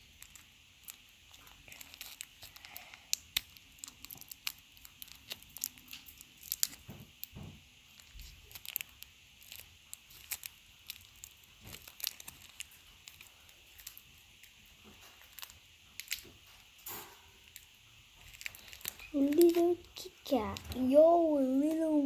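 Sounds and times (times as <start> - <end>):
chocolate wrapper crackling: 0.0 - 16.8, 17.4 - 22.0.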